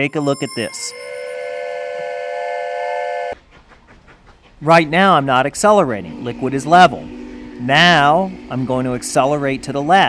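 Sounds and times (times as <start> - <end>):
train whistle blast: 0.7 - 3.4, 6.1 - 10.0.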